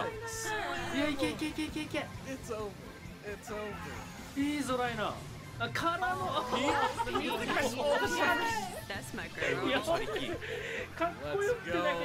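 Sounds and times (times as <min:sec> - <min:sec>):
people laughing: 0:00.7 - 0:02.0, 0:06.1 - 0:12.0
excited chatter: 0:06.1 - 0:12.0.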